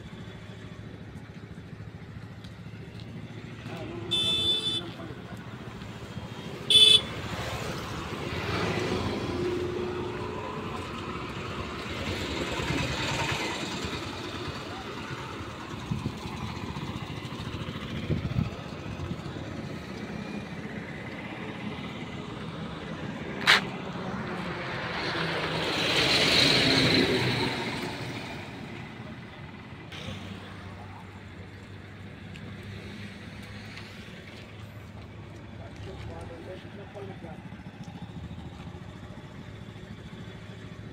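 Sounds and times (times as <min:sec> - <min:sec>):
highway traffic passing: 0:00.0 - 0:40.9.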